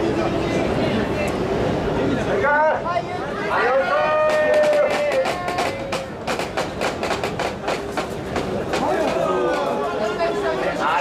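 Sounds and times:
crowd noise: 0.0 - 11.0
sharp clacks: 4.3 - 9.7.

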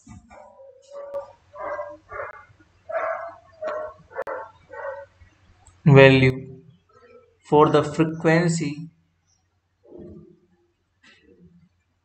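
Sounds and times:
dog barking: 0.3 - 5.1.

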